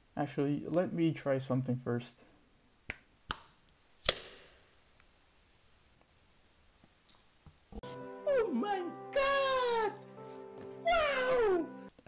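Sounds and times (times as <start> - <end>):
finger snaps: 2.9 - 4.4.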